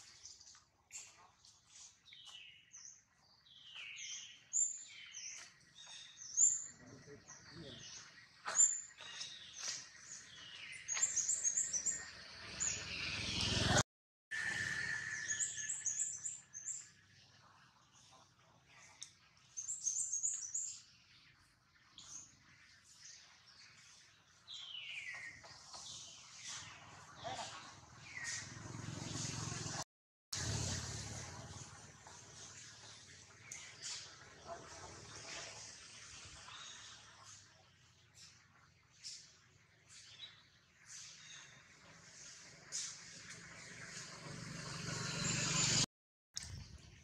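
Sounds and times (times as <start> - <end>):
small birds chirping: 0.0 - 13.8, 15.2 - 29.7, 31.3 - 45.8.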